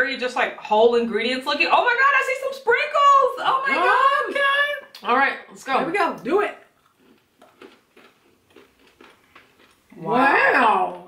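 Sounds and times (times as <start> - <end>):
chewing crunchy bar: 6.7 - 10.0.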